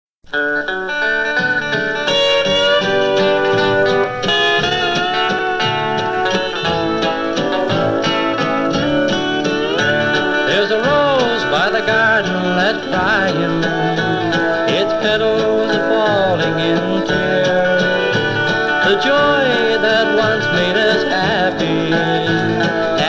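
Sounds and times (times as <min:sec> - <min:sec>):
country and western record: 0:00.2 - 0:23.0.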